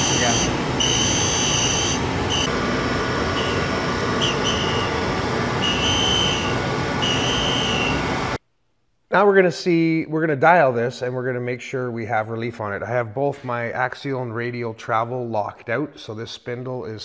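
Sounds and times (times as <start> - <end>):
grinder wheel grinding metal: 0.0 - 2.5.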